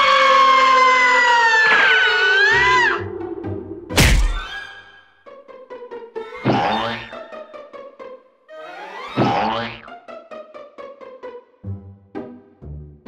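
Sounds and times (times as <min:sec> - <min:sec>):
loud thunk: 0:04.0 - 0:04.5.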